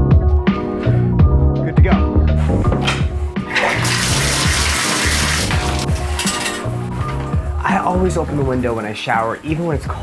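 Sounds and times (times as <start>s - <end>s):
background music: 0.0s - 10.0s
shower water spraying: 3.4s - 6.3s.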